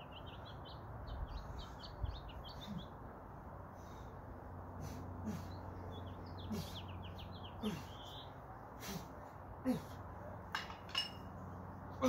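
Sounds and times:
sharp clinking knocks: 10.5s - 11.3s.

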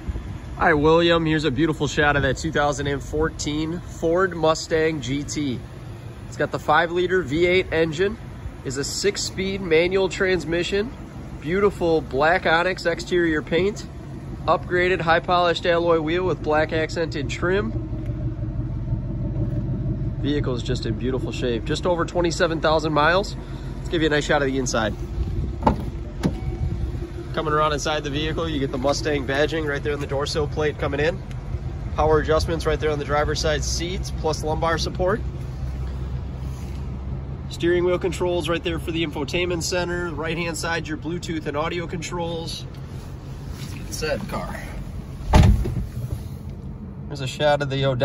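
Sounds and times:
steady low hum: 0.0s - 48.0s
steady low rumble: 0.0s - 48.0s
heavy low thump: 24.8s - 29.2s, 45.3s - 46.3s.

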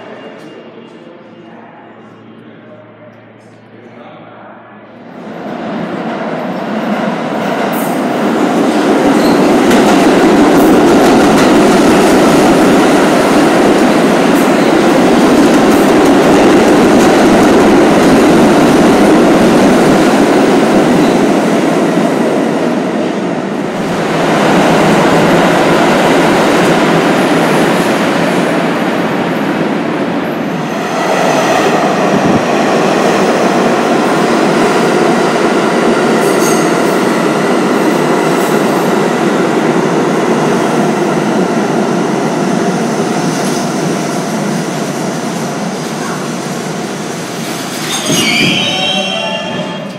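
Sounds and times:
subway train wheels rumbling on rail: 0.0s - 49.9s
high wheel squeal: 47.8s - 49.9s.

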